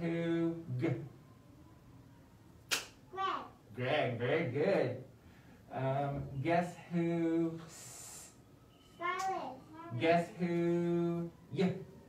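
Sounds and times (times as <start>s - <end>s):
child clapping: 2.7s - 3.0s, 9.1s - 9.5s.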